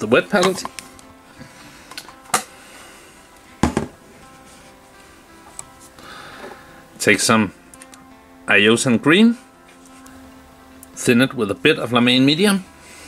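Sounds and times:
quiet background music: 0.0s - 13.0s
sharp knocks: 3.6s - 4.0s.

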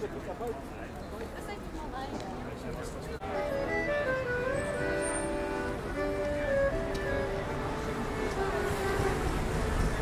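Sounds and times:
street traffic: 0.0s - 10.0s
accordion melody: 3.2s - 10.0s.

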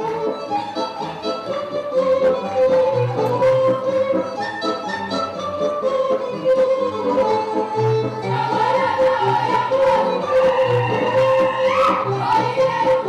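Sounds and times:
fiddle-led folk dance melody: 0.0s - 13.0s.

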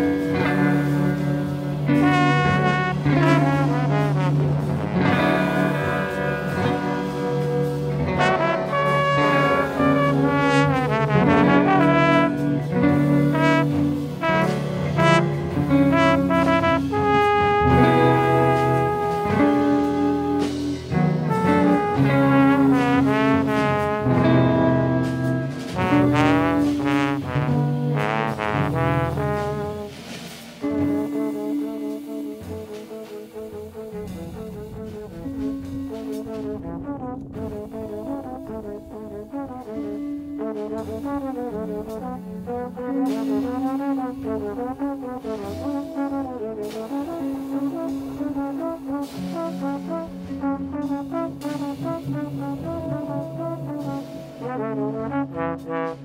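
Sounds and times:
jazz band accompaniment: 0.0s - 56.0s
trombone jazz melody: 0.0s - 56.0s.

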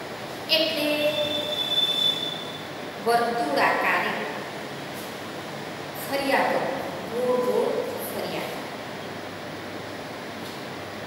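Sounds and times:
microphone feedback squeal: 0.8s - 2.7s.

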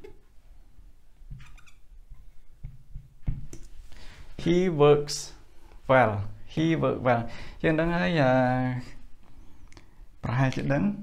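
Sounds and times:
marker squeaking on whiteboard: 1.3s - 1.8s.

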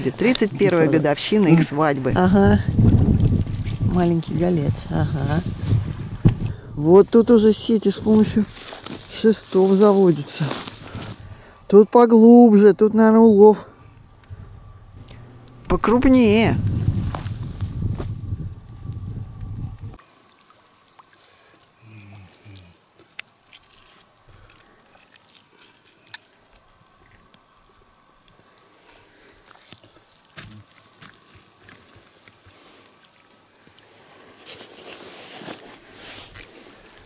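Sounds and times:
heavy low rumble: 0.0s - 8.6s, 13.8s - 20.0s
water dripping and sloshing: 20.0s - 35.0s.

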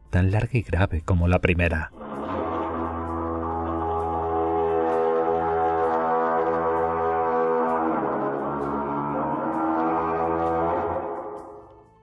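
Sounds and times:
long low horn blast: 1.9s - 11.8s.

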